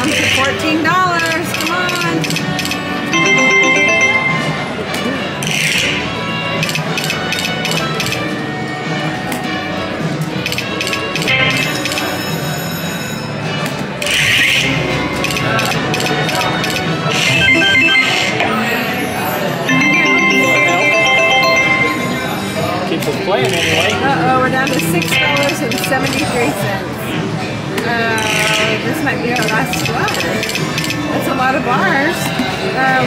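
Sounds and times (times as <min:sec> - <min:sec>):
slot machine jingles and chimes: 0:01.7 - 0:05.2, 0:15.2 - 0:22.9.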